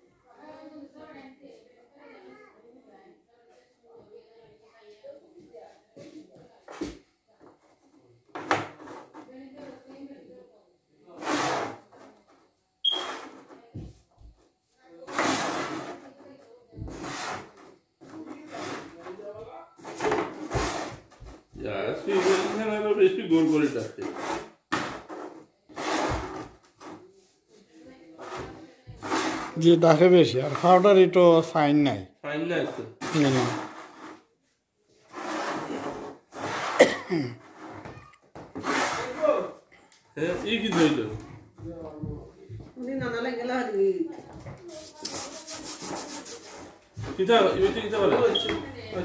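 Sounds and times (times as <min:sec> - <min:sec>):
pieces scraping across board: 0:08.4 - 0:09.3, 0:11.2 - 0:12.2, 0:15.1 - 0:16.2, 0:16.8 - 0:19.2, 0:19.8 - 0:21.4, 0:22.0 - 0:22.7, 0:23.4 - 0:27.0, 0:28.2 - 0:29.8, 0:32.7 - 0:34.3, 0:35.1 - 0:39.3
person coughing: 0:36.8 - 0:37.4.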